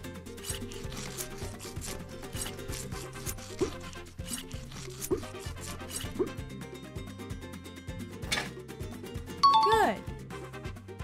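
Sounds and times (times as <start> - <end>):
background music: 0.0 - 11.0
tweezers scraping skin: 0.4 - 6.4.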